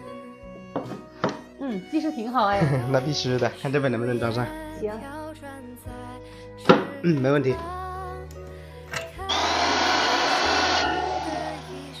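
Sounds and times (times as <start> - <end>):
background music: 0.0 - 12.0
electric drill boring: 9.3 - 12.0.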